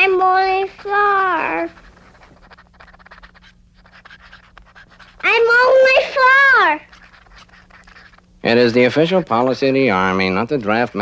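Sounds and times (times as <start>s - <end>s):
faint scratching: 0.0s - 11.0s
child calling out: 5.2s - 6.9s.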